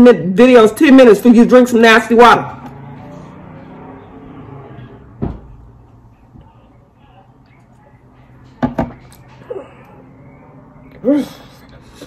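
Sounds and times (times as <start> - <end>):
bottle knocking on a tabletop: 8.6 - 9.0.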